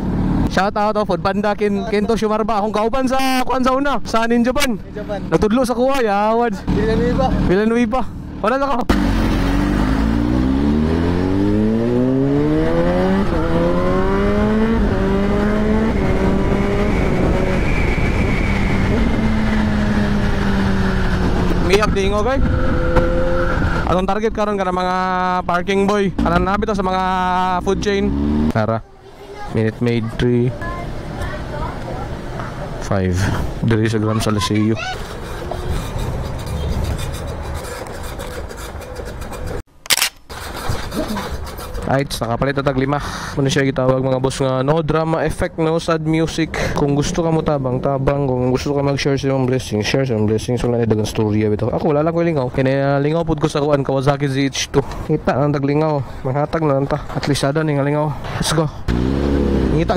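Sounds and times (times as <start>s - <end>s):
motorcycle engine accelerating: 0.0s - 0.6s, 6.5s - 24.0s, 25.9s - 28.8s, 58.9s - 59.9s
sharp click: 39.8s - 40.3s.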